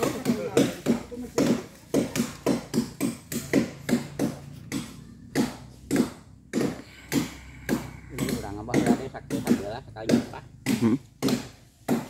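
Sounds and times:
blade chopping wood: 0.0 - 12.0.

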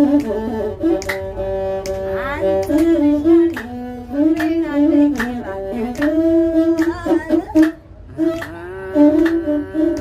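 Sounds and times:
person singing: 4.2 - 10.0.

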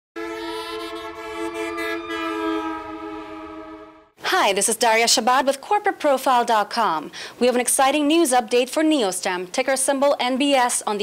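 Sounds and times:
held music chord: 0.2 - 4.2.

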